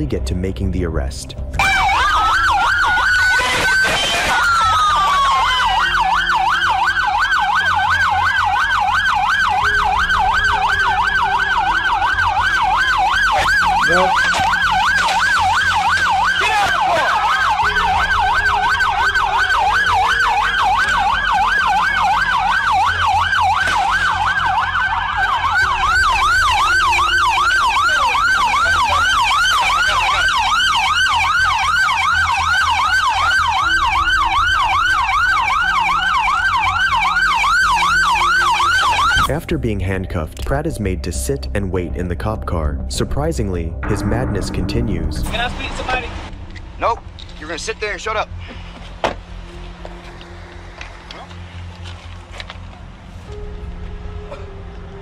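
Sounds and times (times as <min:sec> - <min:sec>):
police siren yelping: 0:01.6 - 0:39.3.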